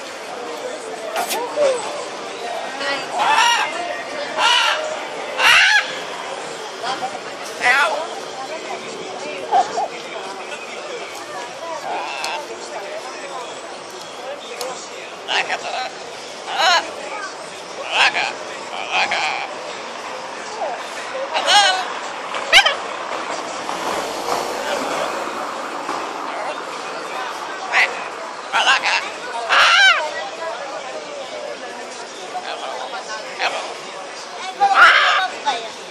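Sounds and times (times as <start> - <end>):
faint voices: 0.0 - 35.9
street background hiss: 0.0 - 35.9.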